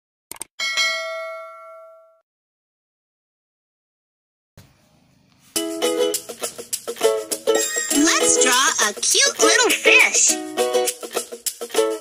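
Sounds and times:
notification bell ding: 0.6s - 2.2s, 7.6s - 8.0s.

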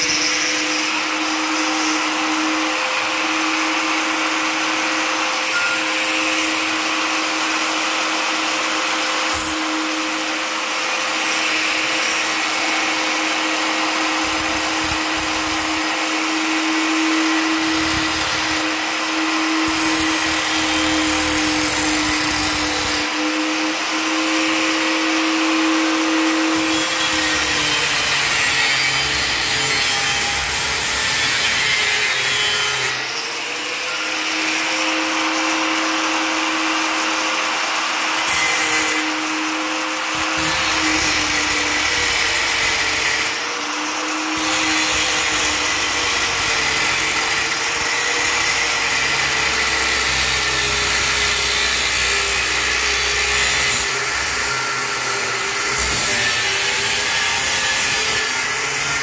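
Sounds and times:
angle grinder cutting steel: 0.0s - 59.0s.

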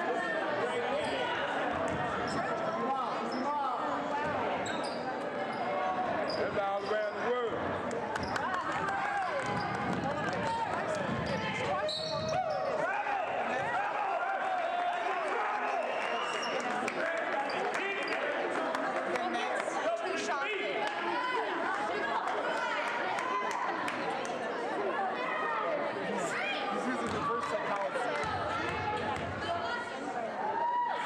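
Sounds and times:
spectators shouting and talking: 0.0s - 31.0s.

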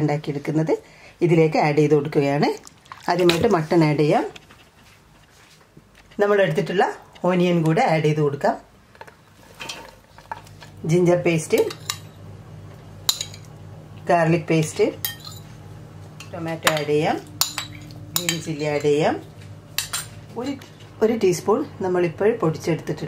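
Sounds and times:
spoon clinking on steel: 11.6s - 12.1s, 13.1s - 13.5s, 15.0s - 15.5s, 16.2s - 19.0s, 19.8s - 20.2s.

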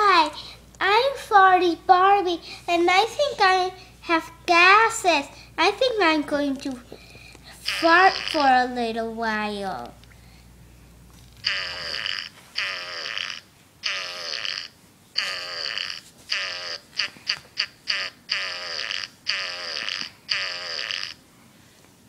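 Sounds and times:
imitation fart noises: 7.6s - 8.6s, 11.2s - 21.2s.

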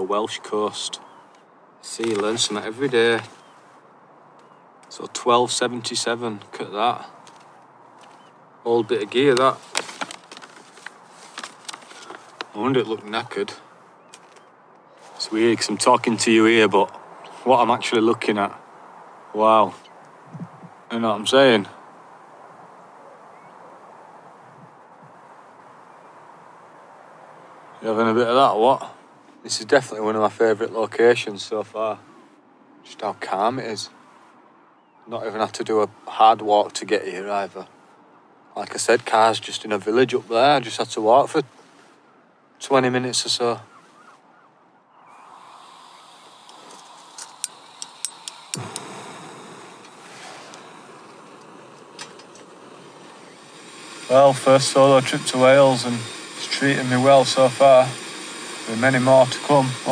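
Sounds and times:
outdoor background hiss: 0.0s - 59.9s
gas burner rushing: 45.1s - 59.9s
gas hissing from stove valve: 45.2s - 59.9s
sharp igniter clicks: 45.9s - 59.9s.

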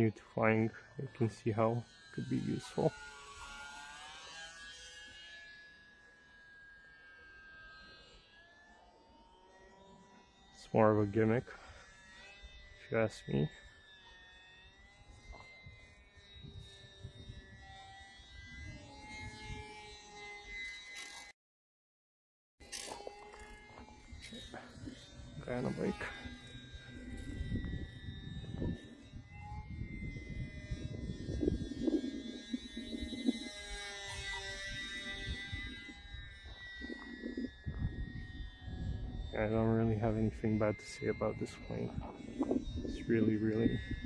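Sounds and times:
model plane motor whine: 0.0s - 21.4s, 22.6s - 44.0s
wind rumble on microphone: 15.1s - 19.8s, 23.7s - 44.0s.

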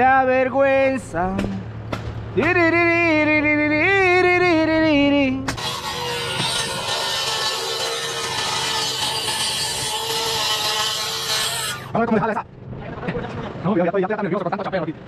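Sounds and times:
power saw whining: 5.5s - 12.0s
saw cutting noise: 5.5s - 12.0s.

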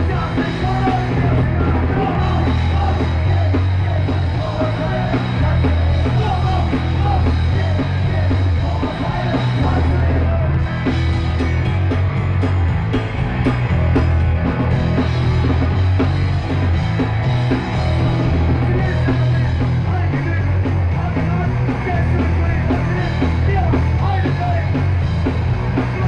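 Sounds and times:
electric guitar: 0.0s - 26.0s
heavy bass line: 0.0s - 26.0s
steady drum beat: 0.0s - 26.0s.

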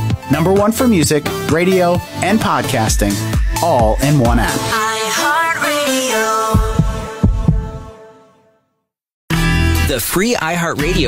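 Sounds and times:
music jingle: 1.6s - 7.8s
low thumps: 6.5s - 7.9s.

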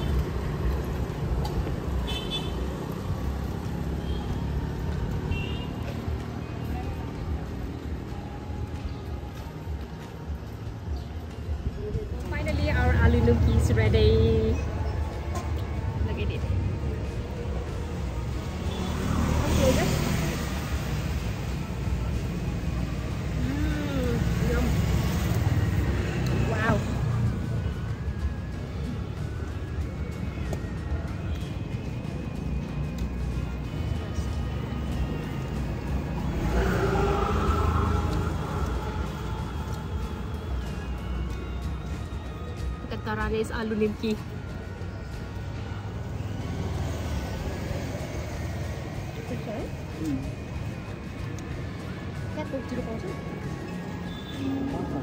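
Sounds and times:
low traffic rumble: 0.0s - 55.0s
background music: 6.0s - 55.0s.

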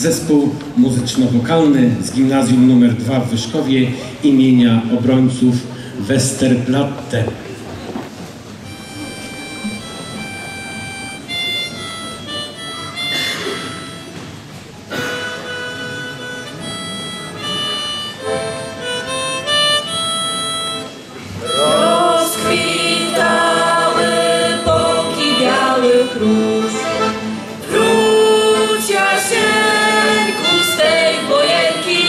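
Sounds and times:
band with accordions: 8.6s - 32.0s
harmonica melody: 8.6s - 32.0s
boys singing: 21.4s - 32.0s.

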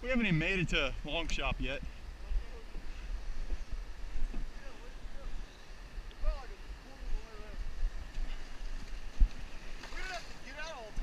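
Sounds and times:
wind rumbling on microphone: 0.0s - 11.0s
rushing creek water: 0.1s - 11.0s.

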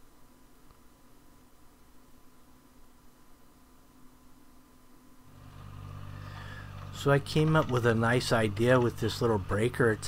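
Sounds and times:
tracked loader engine running: 5.3s - 10.0s.

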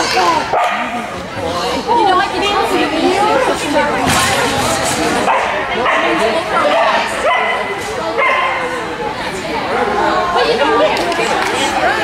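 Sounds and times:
people talking: 0.0s - 12.0s
dog barking: 0.5s - 1.0s, 5.3s - 8.6s.

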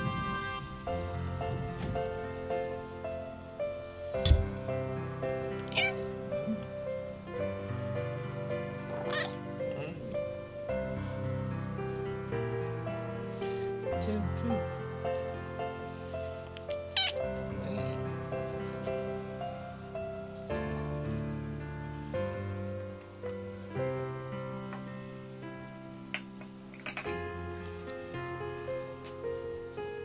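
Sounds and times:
soft background music: 0.0s - 30.0s
dull thump: 4.2s - 4.7s
cat meowing: 5.6s - 6.6s, 9.0s - 9.6s, 16.8s - 17.3s.

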